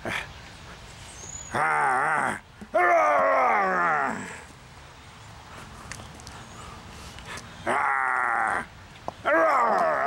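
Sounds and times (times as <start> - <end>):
man growling: 1.5 - 4.4, 9.3 - 10.0.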